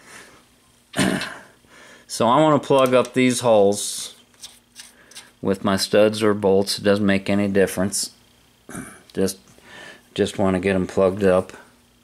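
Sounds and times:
man clearing his throat: 0:00.9 - 0:01.6, 0:08.7 - 0:09.1.

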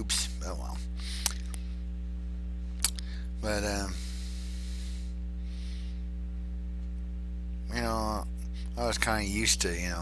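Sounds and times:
electrical mains hum: 0:00.0 - 0:10.0.

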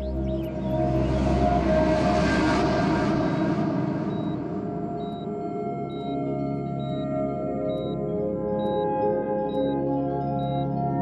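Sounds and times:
low music drone: 0:00.0 - 0:11.0.

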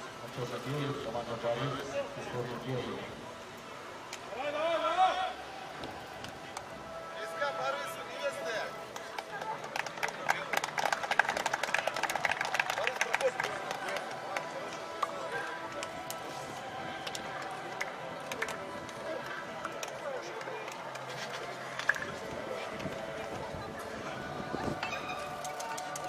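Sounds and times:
background music: 0:00.0 - 0:26.0
chatter: 0:00.0 - 0:26.0
hand clapping: 0:08.9 - 0:16.3, 0:17.0 - 0:19.0.

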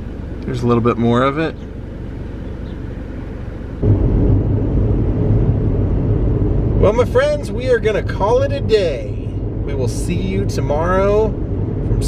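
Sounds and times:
car engine and tyres drone: 0:01.7 - 0:12.0
low rumble: 0:03.8 - 0:12.0.

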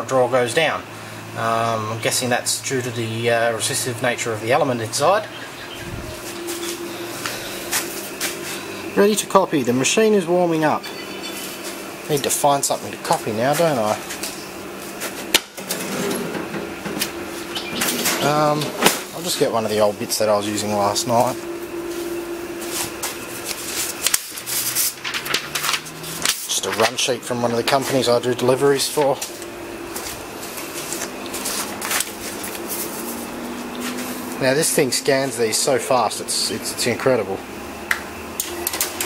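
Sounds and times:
photocopier fans and motors whirring: 0:00.0 - 0:39.0
paper rustling: 0:21.9 - 0:28.1, 0:28.8 - 0:34.2.

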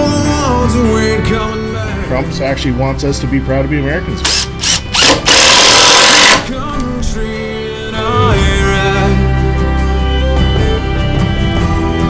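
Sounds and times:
power tool running: 0:04.2 - 0:06.5.

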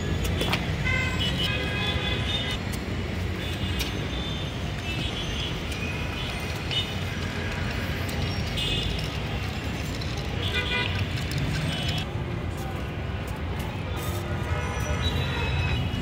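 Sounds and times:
road traffic rumbling: 0:00.0 - 0:16.0.

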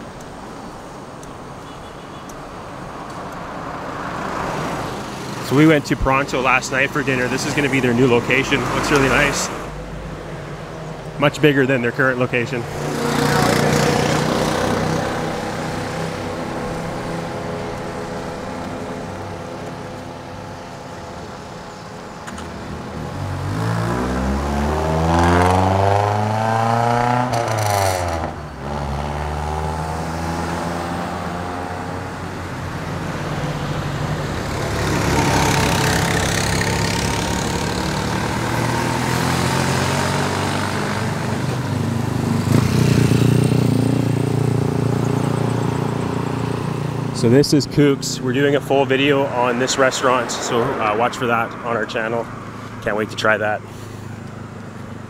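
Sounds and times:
street traffic: 0:00.0 - 0:55.0
vehicle engine passing by: 0:03.5 - 0:10.2, 0:11.2 - 0:21.8, 0:22.4 - 0:55.0
motorcycle approaching: 0:03.5 - 0:55.0.

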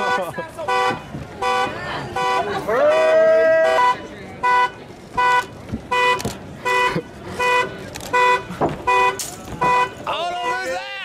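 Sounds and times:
car horn honking: 0:00.0 - 0:11.0
street crowd noise: 0:00.0 - 0:11.0.

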